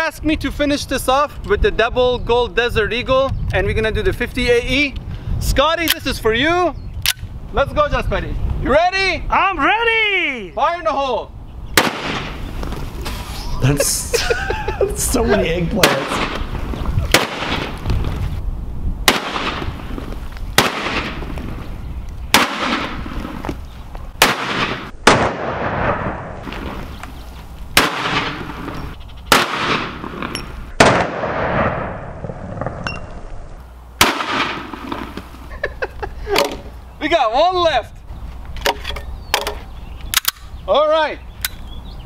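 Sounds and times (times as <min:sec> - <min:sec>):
pistol shots: 0:11.8 - 0:12.4, 0:15.8 - 0:16.5, 0:17.1 - 0:17.8, 0:19.1 - 0:19.8, 0:20.6 - 0:21.3, 0:22.3 - 0:23.0, 0:24.2 - 0:26.4, 0:27.8 - 0:28.6, 0:29.3 - 0:32.8, 0:34.0 - 0:35.1.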